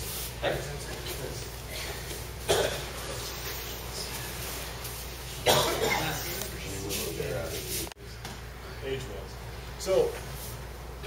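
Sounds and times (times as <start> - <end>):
person coughing: 1.7 - 3.2, 5.4 - 6.3.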